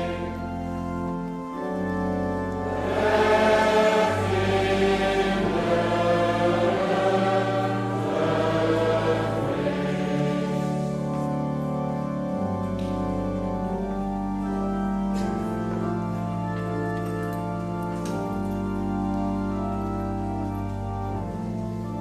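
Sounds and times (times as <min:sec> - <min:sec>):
church organ: 0:00.0 - 0:22.0
congregation singing slowly: 0:00.0 - 0:22.0.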